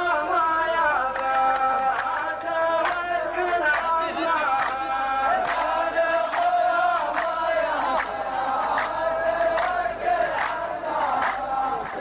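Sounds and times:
men's chorus chanting in unison: 0.0s - 12.0s.

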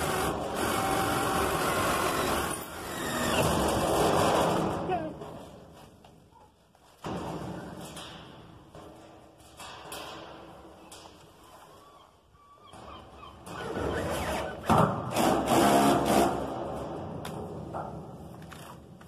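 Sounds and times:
drill boring through sheet steel: 0.0s - 3.4s.

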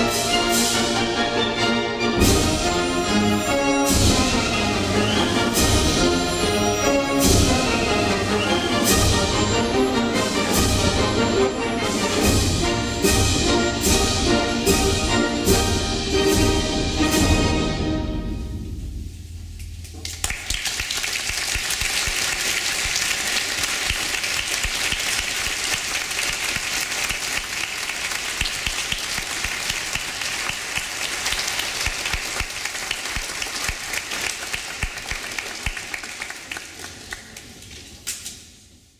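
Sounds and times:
music: 0.0s - 20.1s
audience applauding: 20.0s - 37.8s.

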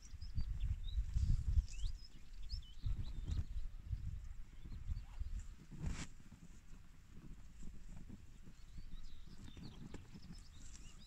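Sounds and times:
small bird chirping: 0.0s - 5.6s, 8.3s - 11.0s.

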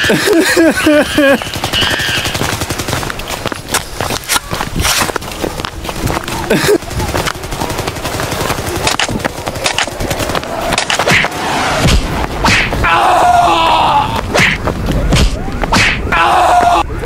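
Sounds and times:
drawn-out cry: 0.0s - 3.3s, 12.7s - 14.3s, 16.0s - 17.0s
gunshots: 0.0s - 5.2s, 6.0s - 12.8s.

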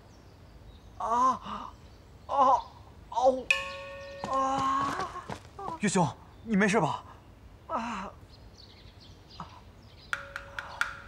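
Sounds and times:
bell-like chime: 3.5s - 4.8s.

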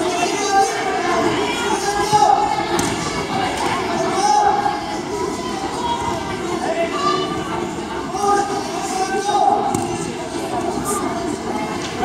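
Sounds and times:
voices calling out and chattering: 0.0s - 12.0s.

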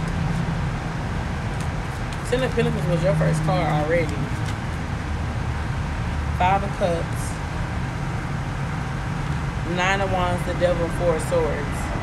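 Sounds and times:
low outdoor rumble: 0.0s - 12.0s.

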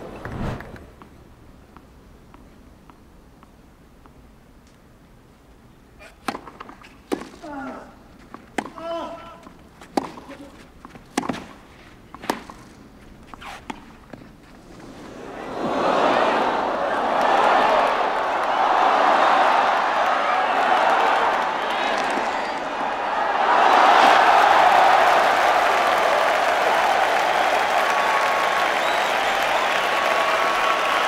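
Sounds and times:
tennis racket hitting ball: 6.0s - 7.4s, 8.2s - 11.6s, 12.2s - 14.2s
crowd cheering and applauding: 15.2s - 31.0s.

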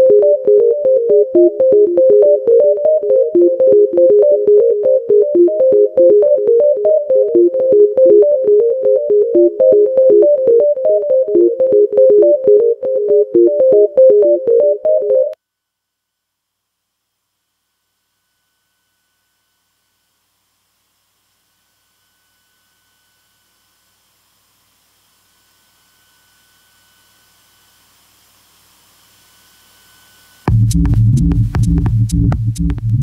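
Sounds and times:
electronic music with pulsing beat: 0.0s - 15.4s, 30.5s - 33.0s
faint high synthesizer tones: 0.0s - 15.4s.

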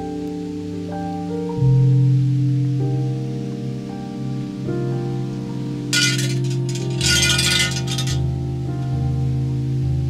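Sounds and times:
background music: 0.0s - 10.0s
shrine bell jangling: 6.0s - 8.2s.

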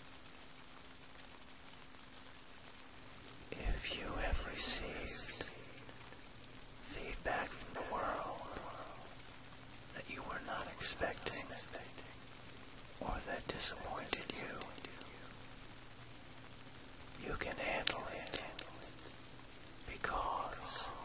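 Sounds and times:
rain: 0.0s - 21.0s
person whispering: 3.5s - 5.9s, 6.8s - 9.2s, 9.9s - 12.2s, 13.0s - 15.4s, 17.2s - 19.2s, 19.8s - 21.0s.

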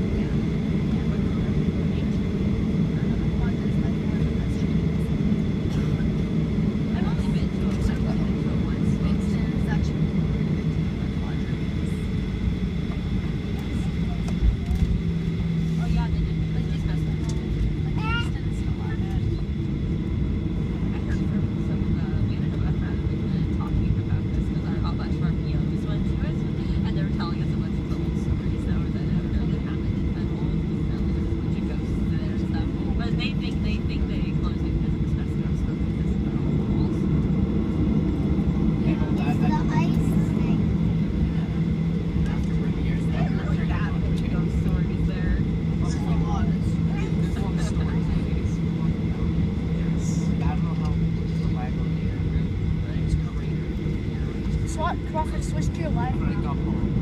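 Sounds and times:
airliner cabin engine rumble: 0.0s - 57.0s
passenger voices murmuring: 0.0s - 57.0s.

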